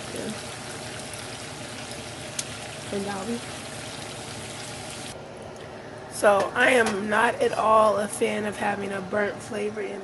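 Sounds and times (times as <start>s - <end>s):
meat sizzling in hot oil: 0.0s - 5.2s.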